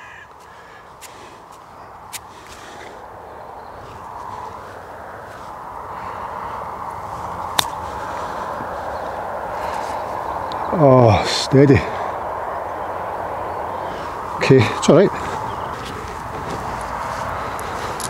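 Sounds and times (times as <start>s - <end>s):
golf club striking ball: 7.5s - 7.8s.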